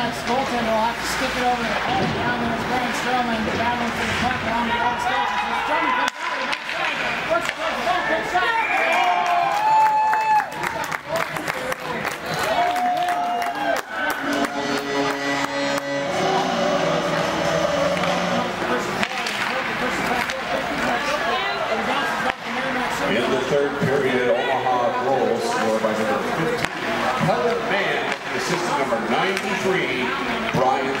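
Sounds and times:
crowd cheering and shouting: 0:04.7 - 0:07.2, 0:07.9 - 0:23.0
music over arena speakers: 0:13.9 - 0:18.8.

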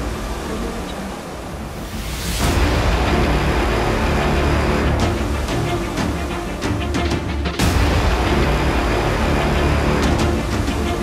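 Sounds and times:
dense music with deep low end: 0:00.0 - 0:11.0.

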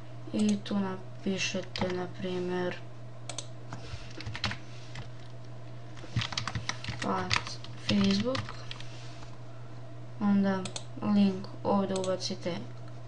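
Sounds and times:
typing on keyboard: 0:04.2 - 0:04.6, 0:06.1 - 0:08.8.

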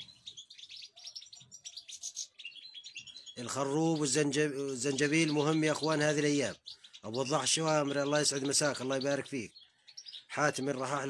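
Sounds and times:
goldfinches twittering: 0:00.0 - 0:11.0.

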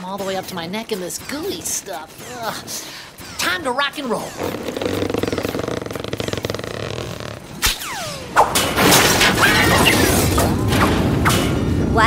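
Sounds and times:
cartoon buzzing whirr: 0:04.3 - 0:08.2.

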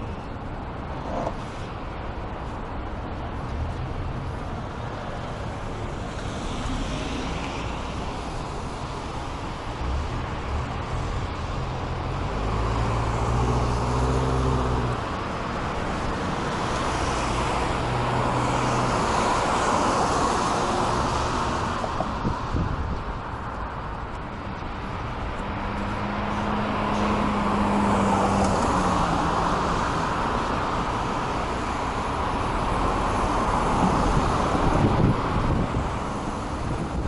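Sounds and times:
car road noise: 0:00.0 - 0:37.0.

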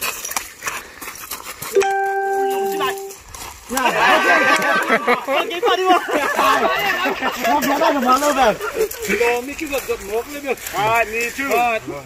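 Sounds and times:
men talking: 0:03.7 - 0:12.0.

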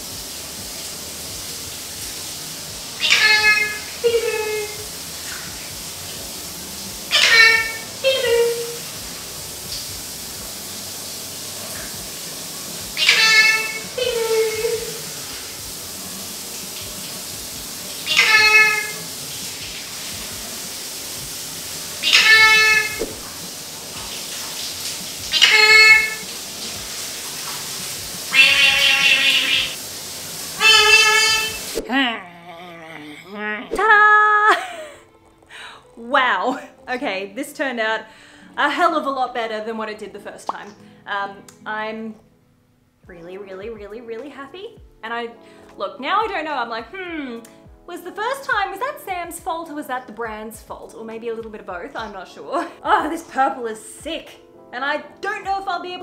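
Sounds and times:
shower water running: 0:00.0 - 0:31.9, 0:33.7 - 0:40.8, 0:46.0 - 0:54.3, 0:55.3 - 0:56.0
parrot call: 0:03.0 - 0:04.8, 0:07.1 - 0:08.8, 0:13.0 - 0:15.0, 0:18.0 - 0:19.0, 0:22.0 - 0:23.1, 0:25.3 - 0:26.2, 0:28.3 - 0:29.8, 0:30.6 - 0:31.8.

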